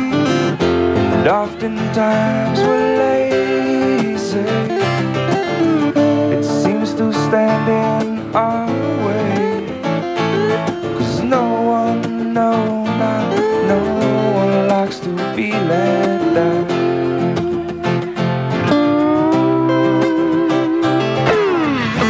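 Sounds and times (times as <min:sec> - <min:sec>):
slide guitar solo: 0:00.0 - 0:22.0
strummed acoustic guitar: 0:00.0 - 0:22.0.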